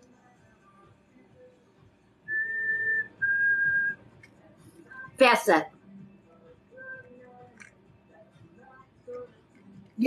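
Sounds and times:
whistled notes: 2.3 - 4.0.

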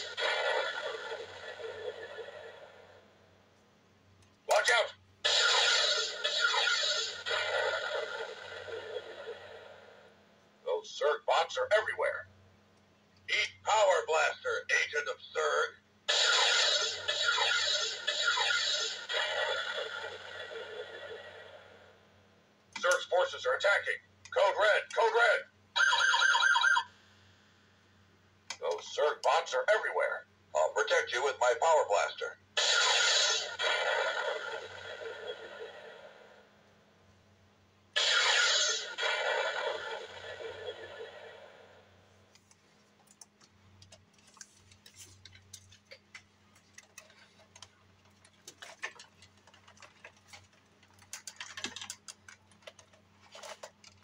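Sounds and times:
toy sci-fi blast effect: 0.0 - 2.5, 5.2 - 9.6, 16.1 - 21.4, 32.6 - 36.0, 38.0 - 41.6.

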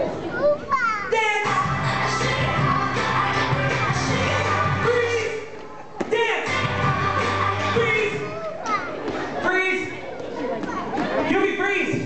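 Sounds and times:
excited children's voices: 0.0 - 5.4, 6.5 - 9.2
crowd chatter: 0.0 - 12.0
dance music with bass line: 1.5 - 5.1, 6.5 - 8.2.

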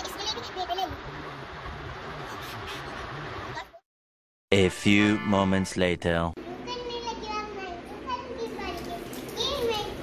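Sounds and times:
young child talking: 6.4 - 10.0.

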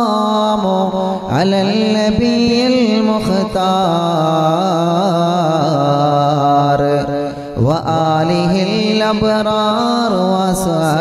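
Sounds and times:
person chanting devotional verses: 0.0 - 11.0.

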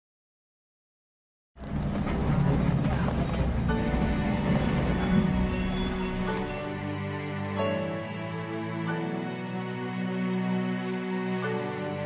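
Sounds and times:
bus engine rumble: 1.6 - 6.8
music: 1.6 - 12.0.

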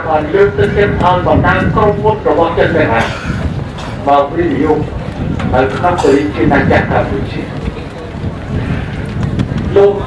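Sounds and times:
wind rumbling on microphone: 0.0 - 10.0
man speaking: 4.0 - 4.9, 5.6 - 7.5.

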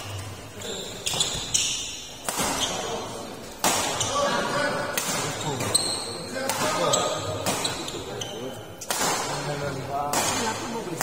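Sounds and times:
rackets hitting shuttlecock: 1.1 - 2.9, 3.6 - 4.2, 4.9 - 5.8, 6.4 - 8.0, 8.8 - 11.0.

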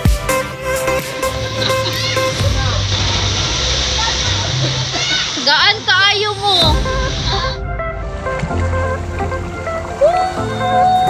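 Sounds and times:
water rushing and splashing: 0.0 - 11.0.

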